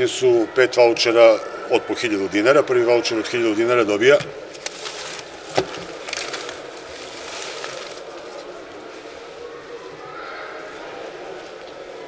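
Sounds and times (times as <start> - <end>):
paper slips rustling in plastic box: 4.5 - 8.4.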